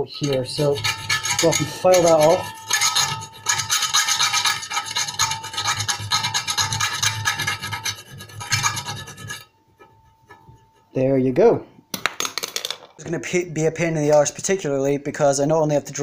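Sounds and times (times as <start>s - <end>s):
hand file rasping on sheet metal: 0.0s - 11.0s.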